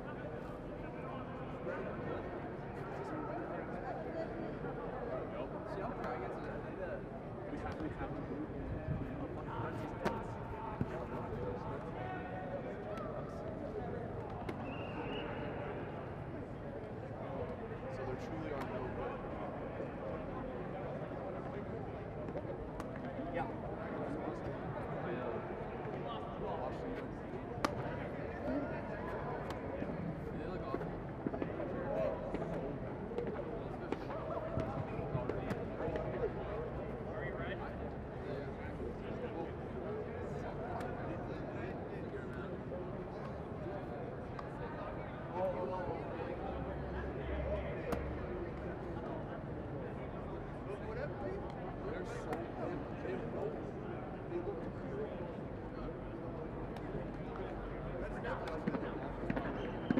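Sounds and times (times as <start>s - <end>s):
players talking and calling out: 0.4s - 59.9s.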